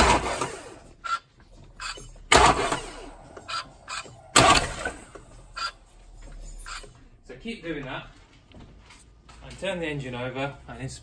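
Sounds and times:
engine turned over by hand: 0.0s - 7.0s.

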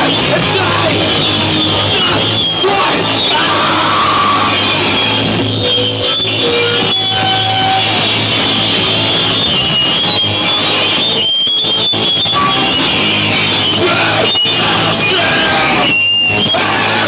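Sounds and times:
electric guitar: 0.0s - 17.0s
rock band playing live: 0.0s - 17.0s.

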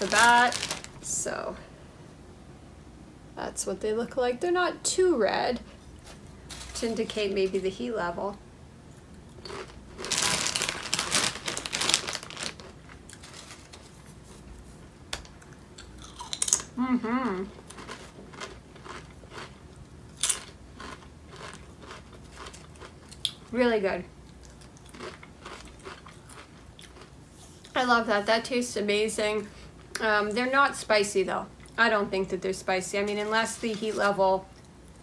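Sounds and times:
crunching tortilla chips: 0.0s - 1.0s, 9.4s - 14.0s, 15.8s - 16.7s, 17.6s - 23.4s, 24.4s - 27.1s.

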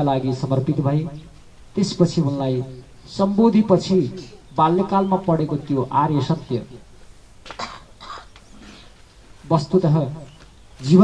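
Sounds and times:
man speaking: 0.0s - 6.9s, 9.4s - 11.0s.

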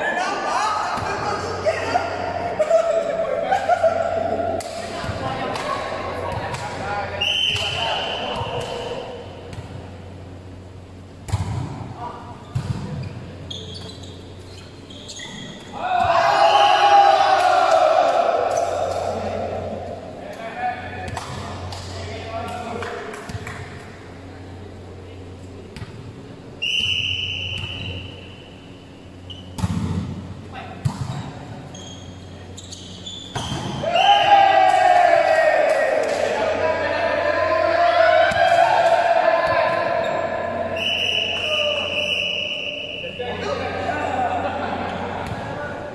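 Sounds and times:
volleyball slaps and thuds: 11.2s - 11.9s, 12.5s - 13.0s, 21.0s - 23.8s, 29.5s - 31.4s, 33.3s - 33.8s
players shouting: 15.7s - 20.9s, 33.5s - 45.9s.

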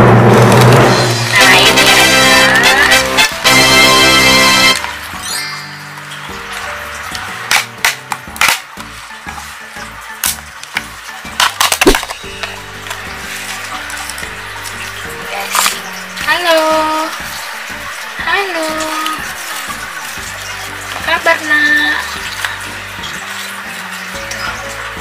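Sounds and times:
background music: 0.0s - 25.0s
plastic tub crackling: 10.2s - 25.0s
paper crinkling: 11.4s - 16.2s.

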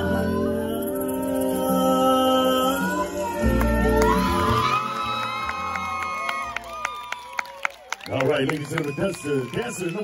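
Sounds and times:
song: 0.0s - 6.4s
audience cheering and whooping: 2.9s - 10.0s.

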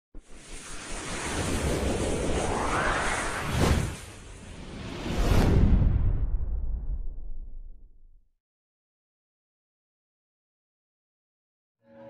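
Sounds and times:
whoosh: 0.2s - 8.1s.

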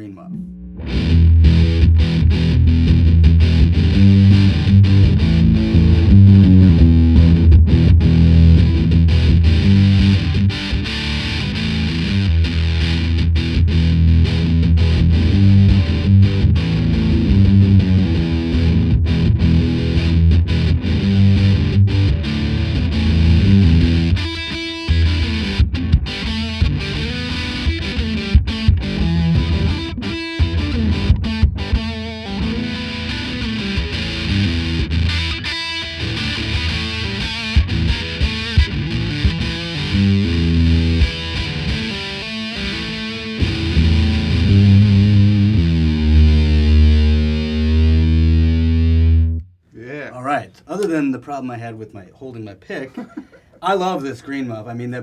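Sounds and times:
fuzz-distorted electric guitar riffs: 0.0s - 49.5s.

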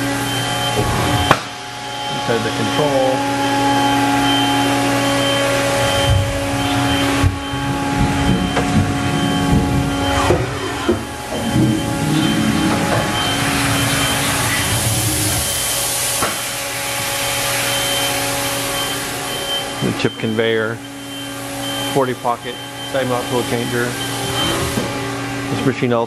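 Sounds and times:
machine hum with high whine: 0.0s - 26.0s.

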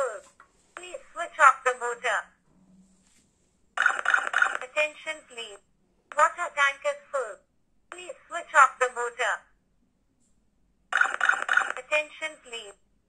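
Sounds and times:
recorded voice message from speaker: 0.0s - 2.4s, 3.8s - 9.5s, 11.0s - 12.8s.

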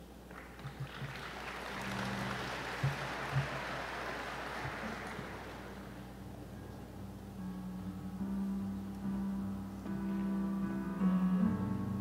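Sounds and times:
audience applauding: 0.3s - 6.1s.

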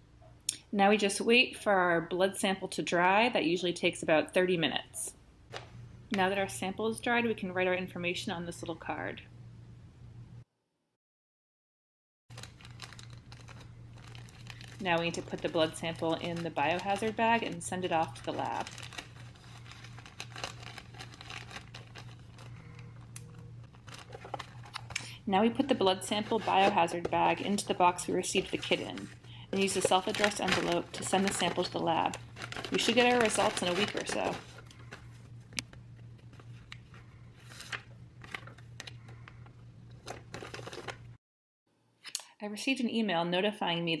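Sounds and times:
plastic bag crinkling: 12.3s - 35.3s, 36.1s - 41.1s
low hum: 12.6s - 41.0s.

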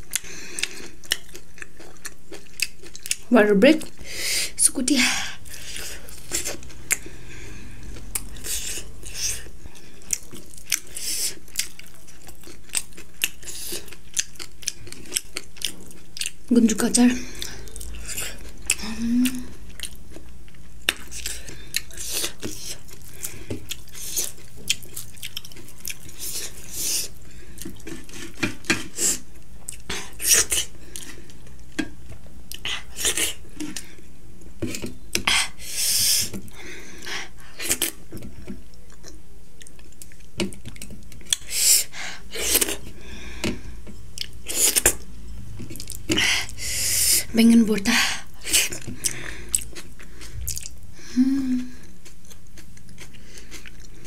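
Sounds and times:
chewing and wet mouth sounds: 0.0s - 4.0s, 5.4s - 34.0s, 36.3s - 41.5s, 48.2s - 54.0s.

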